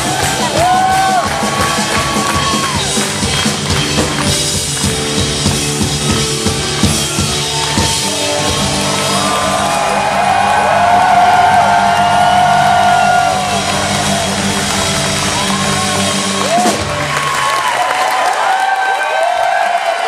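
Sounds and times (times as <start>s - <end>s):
people cheering and whooping: 0.0s - 4.4s, 7.2s - 20.0s.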